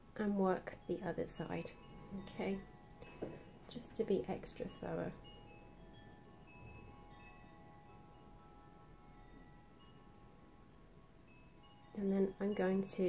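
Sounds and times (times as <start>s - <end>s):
faint low hum: 0.0s - 13.0s
ringing chime tones: 0.6s - 13.0s.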